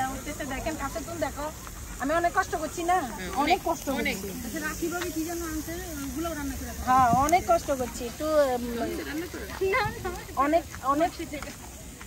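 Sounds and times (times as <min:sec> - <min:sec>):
meat sizzling on a grill: 0:00.0 - 0:12.0
people talking: 0:00.0 - 0:12.0.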